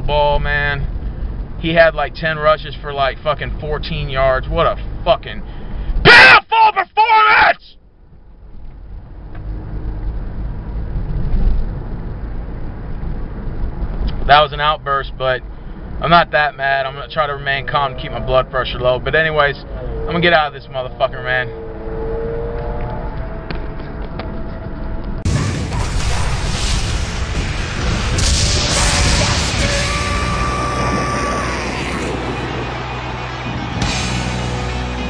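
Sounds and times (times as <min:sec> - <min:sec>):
car engine rumble: 0:00.0 - 0:06.2, 0:07.8 - 0:35.0
road noise inside car: 0:00.0 - 0:35.0.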